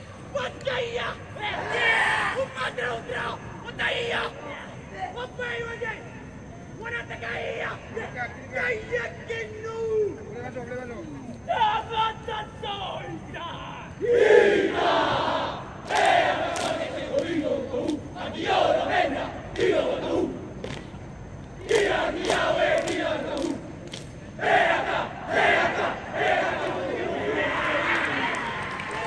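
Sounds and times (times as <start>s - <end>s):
team shouting war cry in unison: 0.4s - 5.6s, 11.5s - 20.5s, 21.6s - 23.7s, 24.3s - 28.3s.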